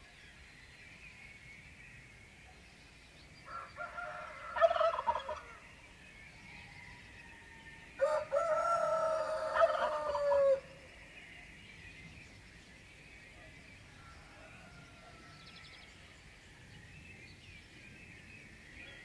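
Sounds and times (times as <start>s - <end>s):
distant birdsong: 0.0s - 19.0s
rooster crowing: 3.5s - 5.6s, 6.6s - 10.7s.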